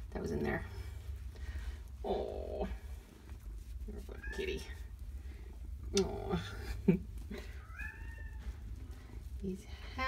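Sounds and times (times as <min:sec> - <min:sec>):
cat purring: 0:02.0 - 0:10.0
cat vocal sounds: 0:07.3 - 0:08.8.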